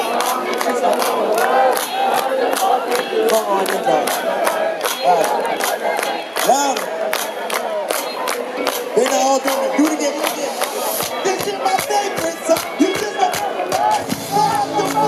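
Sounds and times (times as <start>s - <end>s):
crowd shouting and singing: 0.0s - 15.0s
steady ticking beat: 0.0s - 15.0s.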